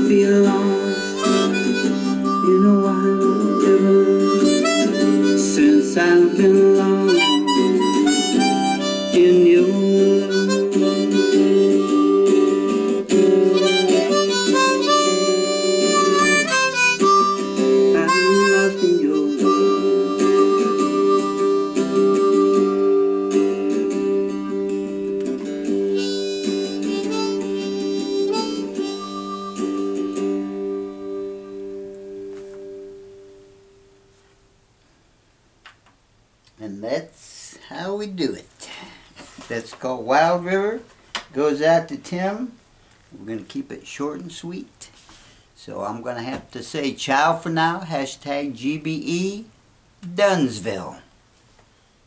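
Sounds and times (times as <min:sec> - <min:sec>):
harmonica playing chords and melody: 0:00.0 - 0:33.7.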